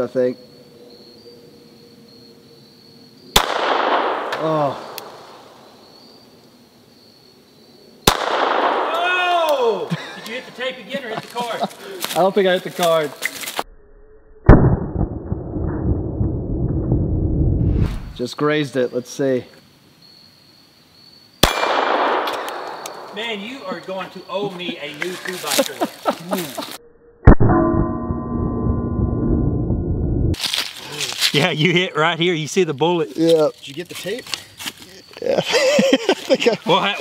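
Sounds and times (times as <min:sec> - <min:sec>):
muffled pistol shot: 0:03.4 - 0:05.4, 0:08.0 - 0:08.9, 0:21.4 - 0:23.2
low rumbling noise: 0:13.8 - 0:18.2, 0:27.3 - 0:30.4.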